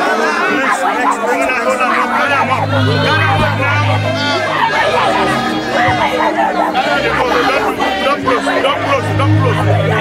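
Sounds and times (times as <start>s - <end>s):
crowd talking and calling: 0.0s - 10.0s
music with held bass notes: 2.2s - 10.0s.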